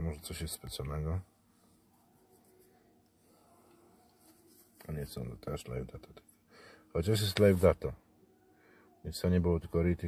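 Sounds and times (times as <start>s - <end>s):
man speaking: 0.0s - 1.3s, 4.8s - 6.3s, 6.9s - 8.0s, 9.0s - 10.0s.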